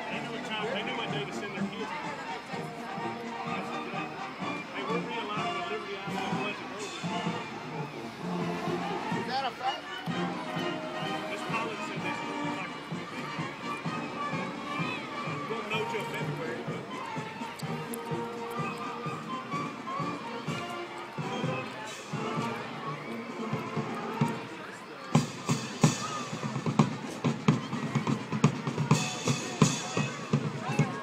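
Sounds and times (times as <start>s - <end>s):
marching band playing: 0.0s - 31.0s
spectators talking: 0.0s - 31.0s.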